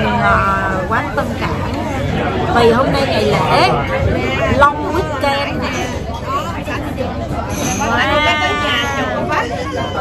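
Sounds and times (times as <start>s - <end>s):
restaurant chatter: 0.0s - 10.0s.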